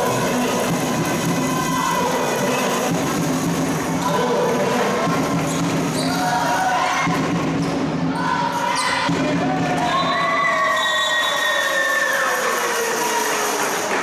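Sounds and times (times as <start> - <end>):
crowd noise: 0.0 - 14.0.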